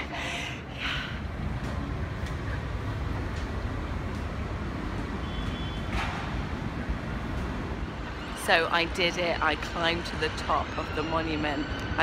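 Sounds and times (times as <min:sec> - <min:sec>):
distant city traffic: 0:00.0 - 0:12.0.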